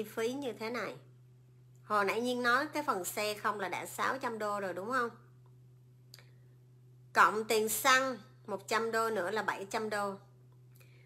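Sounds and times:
woman speaking: 0:00.0 - 0:01.1, 0:01.8 - 0:05.3, 0:07.1 - 0:10.3
low hum: 0:00.0 - 0:11.0.

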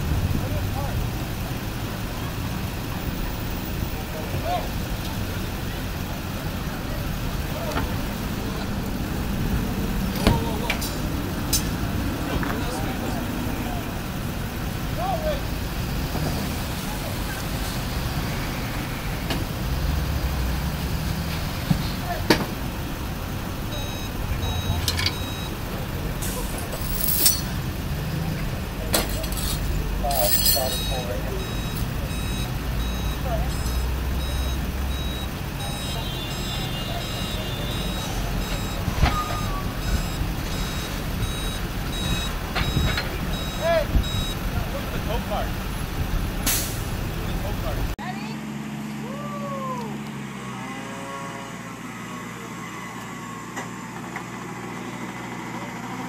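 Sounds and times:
street traffic: 0:00.0 - 0:56.0
truck engine running: 0:00.0 - 0:56.0
reversing alarm beeping: 0:23.7 - 0:25.6, 0:30.6 - 0:44.5.

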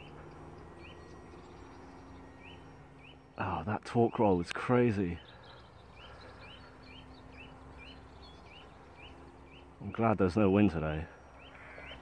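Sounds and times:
bird chirping: 0:00.0 - 0:12.0
faint outdoor background noise: 0:00.0 - 0:12.0.

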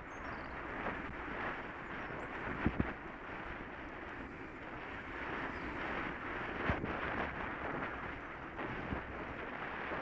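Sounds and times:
bicycle tyres rolling on asphalt: 0:00.0 - 0:10.0
wind on microphone: 0:00.0 - 0:10.0.

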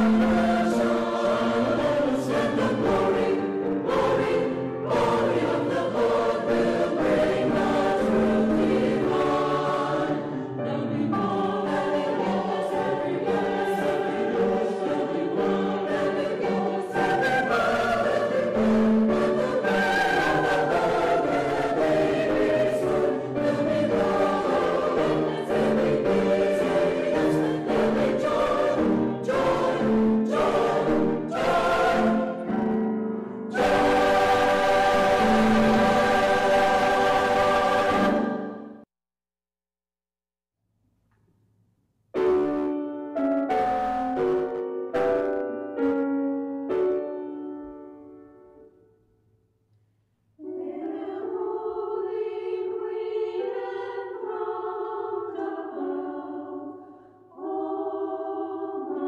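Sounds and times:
choir singing sustained chords: 0:00.0 - 0:38.9, 0:50.4 - 0:59.0.

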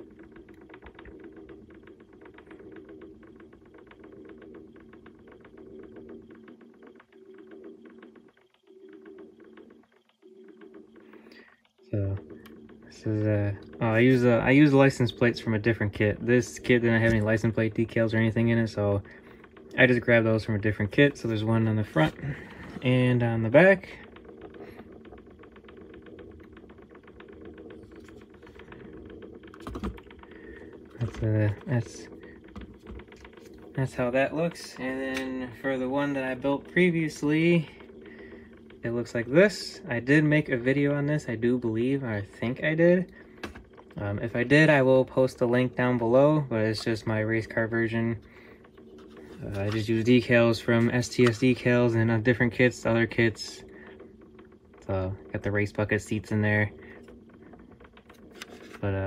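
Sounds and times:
small motor humming with ticking: 0:00.0 - 0:59.0.

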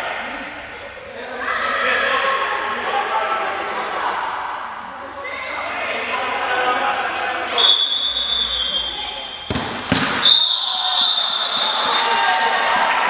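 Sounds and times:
players' voices echoing: 0:00.0 - 0:13.0
sports whistle blasts: 0:07.6 - 0:09.5, 0:10.2 - 0:12.0.

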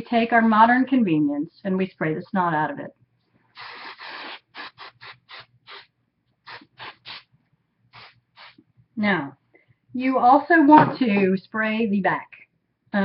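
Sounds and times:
hairspray hissing: 0:03.6 - 0:05.8, 0:06.5 - 0:07.2, 0:08.0 - 0:08.6.

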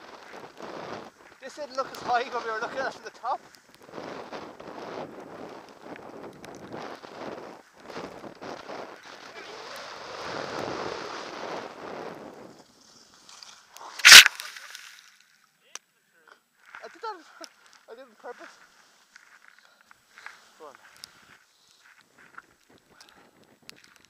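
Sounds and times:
skis swishing through snow: 0:00.0 - 0:15.2, 0:16.8 - 0:22.8
camera thumping on snow: 0:14.0 - 0:15.0.

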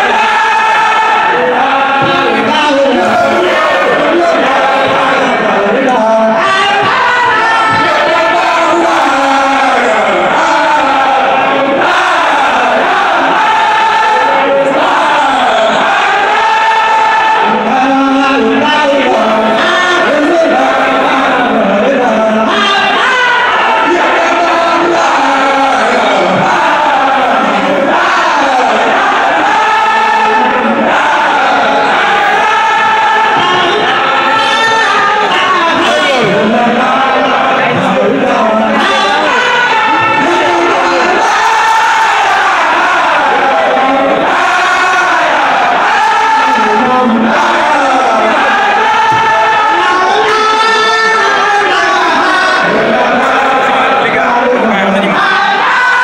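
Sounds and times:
crowd noise: 0:00.0 - 0:56.0
men chanting together: 0:00.0 - 0:56.0.

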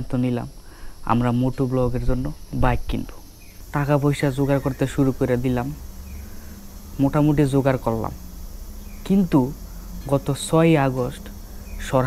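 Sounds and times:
high-pitched insect drone: 0:00.0 - 0:12.0
man talking: 0:01.1 - 0:05.8, 0:07.0 - 0:08.2, 0:09.0 - 0:12.0.

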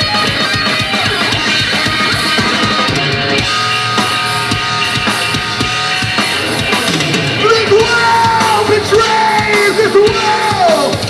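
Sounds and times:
distorted guitar: 0:00.0 - 0:11.0
drums: 0:00.0 - 0:11.0
yelled vocal: 0:04.3 - 0:11.0.

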